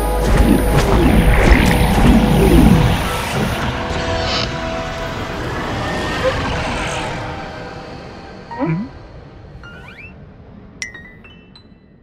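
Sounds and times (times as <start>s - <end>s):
rumbling sound effect: 0.0s - 4.8s
background music: 0.0s - 12.0s.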